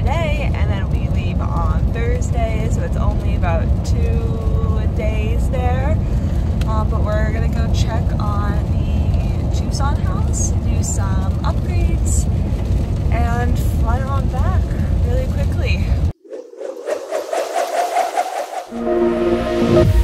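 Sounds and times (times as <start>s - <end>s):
car road noise rumble: 0.0s - 16.1s
electronic intro music: 16.8s - 20.0s.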